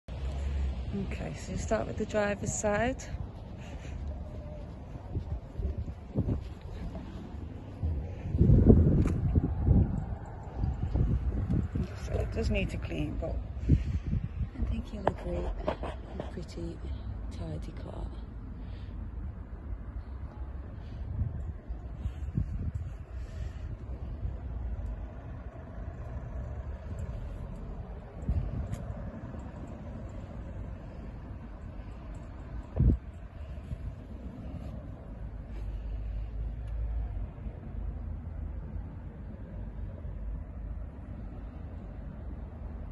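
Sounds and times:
wind buffeting microphone: 0.1 - 17.3, 19.1 - 42.9.

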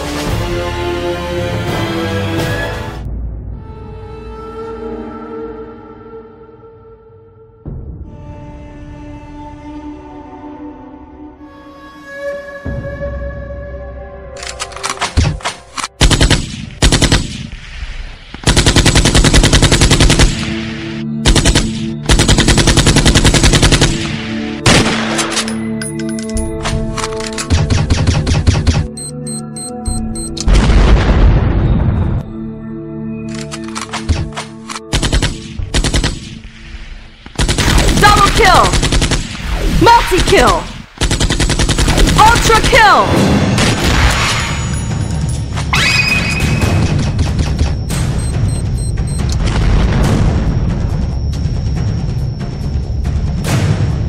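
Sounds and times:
background music: 0.0 - 54.0
automatic gunfire: 16.0 - 17.5, 18.4 - 20.4, 21.2 - 25.4, 34.9 - 36.3, 37.4 - 39.3, 41.0 - 42.9
machine-gun fire bursts: 16.0 - 17.5, 18.4 - 20.6, 21.2 - 25.3, 34.9 - 36.4, 37.4 - 39.4, 40.2 - 43.0.

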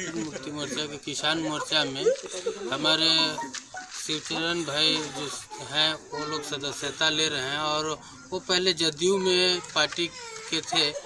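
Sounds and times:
man speaking: 0.0 - 11.0.

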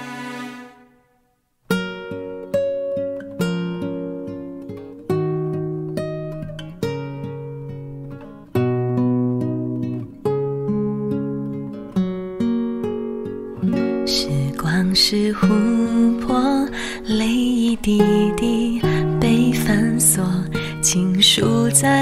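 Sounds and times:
acoustic guitar chords: 0.0 - 22.0.

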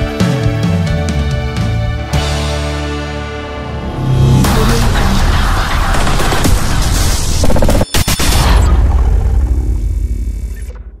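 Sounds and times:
deep cinematic boom rumble: 3.6 - 6.9.

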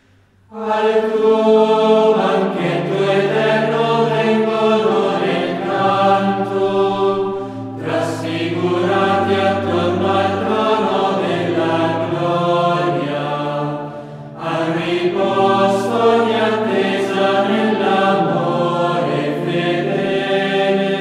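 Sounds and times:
choir chanting long notes: 0.0 - 21.0.

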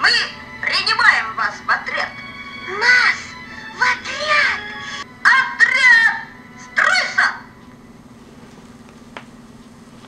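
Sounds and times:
steady low hum: 0.0 - 10.0
high-pitched cartoon voices speaking: 2.7 - 7.5.

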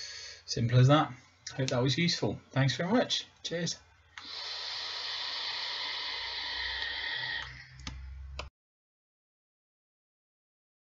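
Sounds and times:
air hissing through vaporizer: 4.2 - 7.9.

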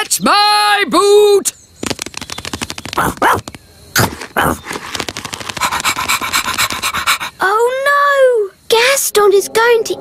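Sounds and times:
quick tapping footsteps: 1.8 - 7.3
rapid panting: 4.6 - 7.5.

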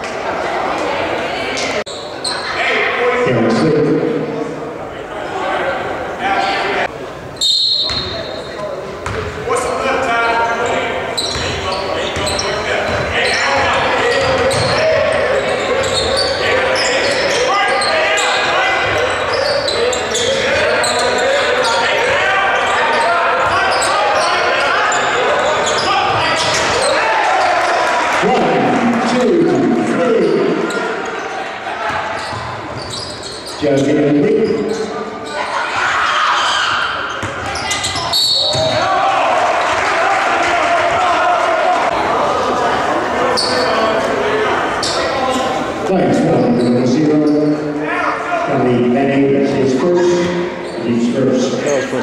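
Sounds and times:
overlapping voices in a gym: 0.0 - 7.2, 8.5 - 32.7, 35.3 - 47.1.

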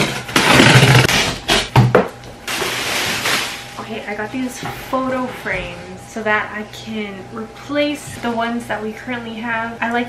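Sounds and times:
box cutter slicing tape: 0.0 - 1.8.

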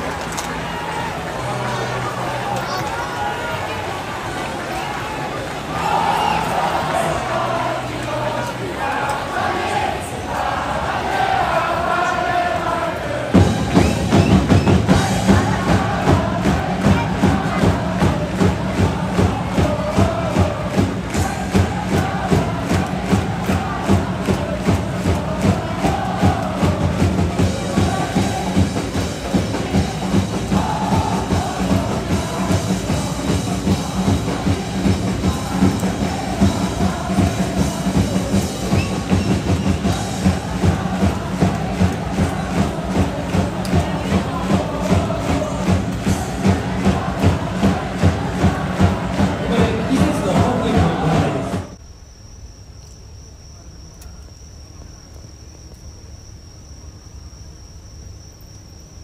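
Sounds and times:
crowd chanting in unison: 0.0 - 51.8
steady drum beat: 13.3 - 51.8.

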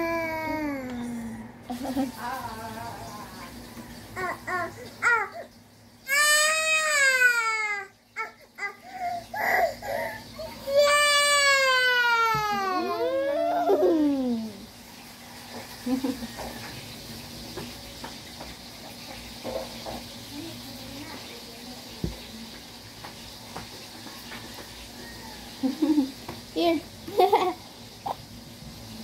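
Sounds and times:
child wailing: 0.0 - 1.2, 6.1 - 14.6.

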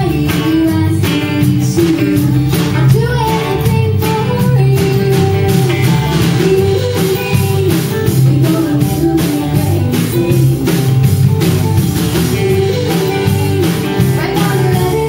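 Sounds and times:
acoustic guitar strumming: 0.0 - 15.0
drum kit beat: 0.0 - 15.0.

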